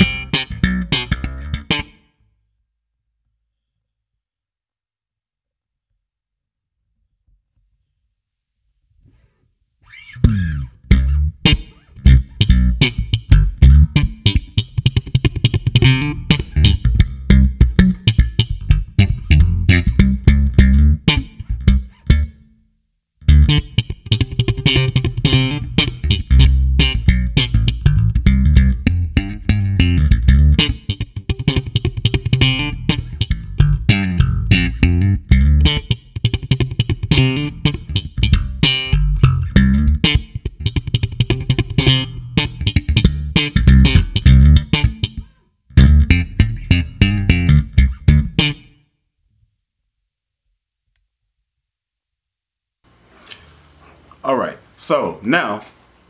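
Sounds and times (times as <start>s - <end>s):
electric bass groove: 0.0s - 1.9s, 10.1s - 22.4s, 23.2s - 48.7s.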